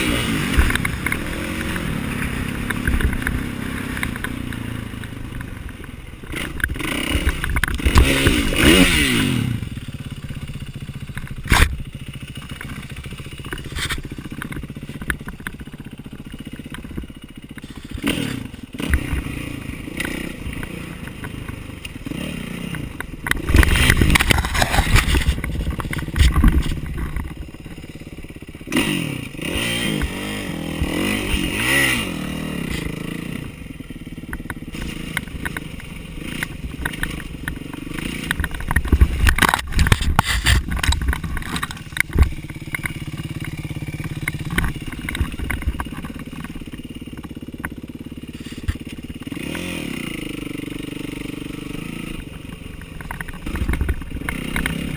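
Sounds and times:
dirt bike engine revving: 0.0 - 54.9
bike clattering over rough ground: 0.4 - 33.0, 34.2 - 49.7, 52.2 - 54.9.

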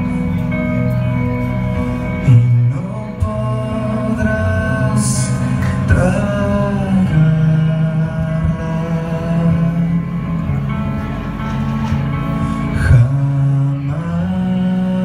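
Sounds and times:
bass guitar: 0.0 - 15.0
sustained electric guitar notes: 0.0 - 15.0.

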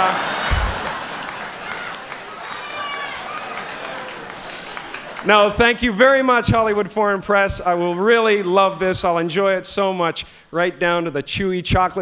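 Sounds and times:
audience laughing: 0.0 - 2.4.

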